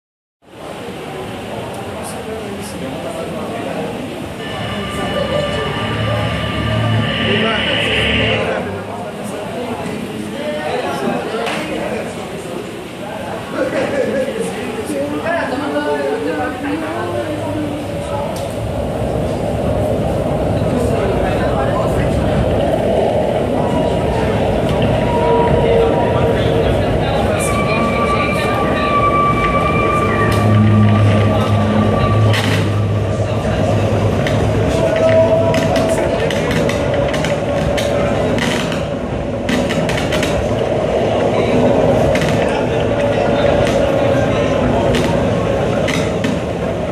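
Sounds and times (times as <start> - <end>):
crowd chatter: 0.4 - 46.9
steady high drone tones: 4.2 - 9.1, 17.8 - 38.3
low hum: 4.3 - 8.9
distorted electric guitar: 4.4 - 8.6
high ringing tone: 4.4 - 8.7, 27.0 - 32.8.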